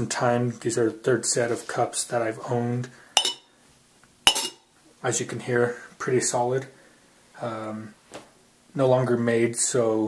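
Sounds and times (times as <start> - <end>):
copper cups clinking: 3.2 - 3.5, 4.3 - 4.6.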